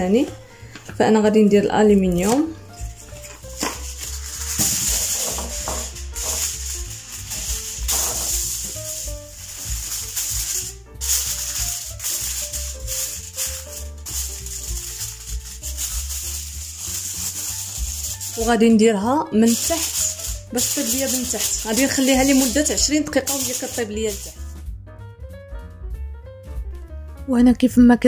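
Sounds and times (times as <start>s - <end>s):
soft background music: 0.0s - 28.0s
aluminium foil crinkling: 2.0s - 24.5s.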